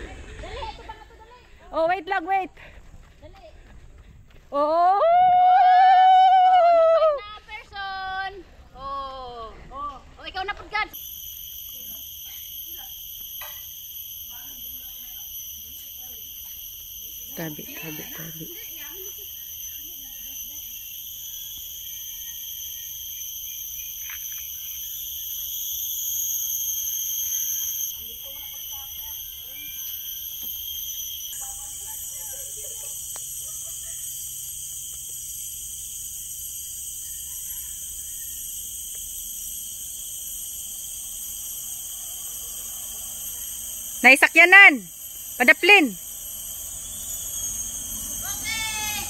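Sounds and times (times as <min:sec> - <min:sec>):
forest insects droning: 0:00.0 - 0:49.0.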